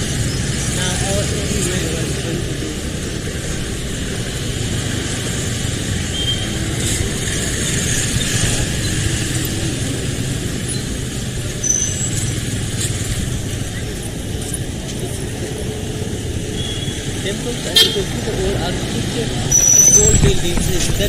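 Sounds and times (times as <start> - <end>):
vehicles and motorbikes passing: 0.0 - 21.0.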